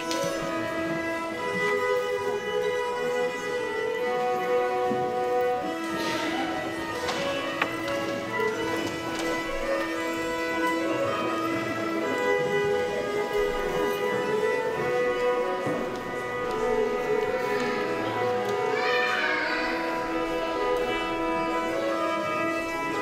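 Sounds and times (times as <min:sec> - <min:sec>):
two fiddles playing: 0:00.0 - 0:23.0.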